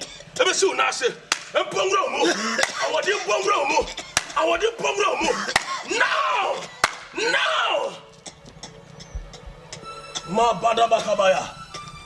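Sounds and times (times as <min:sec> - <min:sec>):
man speaking: 0:00.4 - 0:06.1, 0:10.3 - 0:11.6
sharp slap-like smacks: 0:01.3 - 0:01.6, 0:04.2 - 0:04.4, 0:05.5 - 0:05.8, 0:06.8 - 0:07.1.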